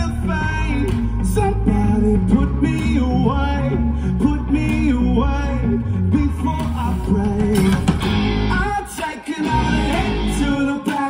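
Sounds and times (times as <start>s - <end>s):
bass guitar: 0.0s - 11.0s
distorted electric guitar: 0.0s - 11.0s
drums: 0.0s - 11.0s
man singing: 0.0s - 11.0s.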